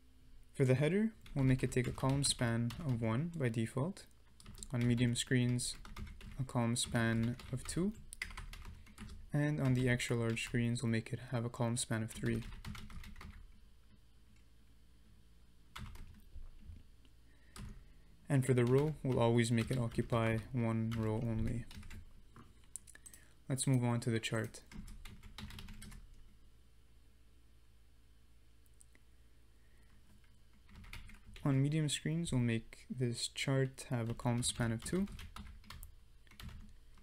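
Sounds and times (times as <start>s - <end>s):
low steady hum: 0.0s - 37.0s
quiet keyboard keystrokes: 4.3s - 10.6s, 12.1s - 14.5s, 15.8s - 16.8s, 18.6s - 26.2s, 29.9s - 31.5s, 34.0s - 37.0s.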